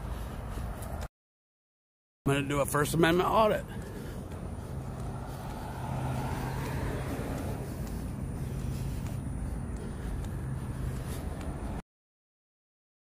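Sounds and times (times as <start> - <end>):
traffic rumble: 0.0 - 1.1, 2.3 - 11.8
low engine hum: 2.7 - 11.8.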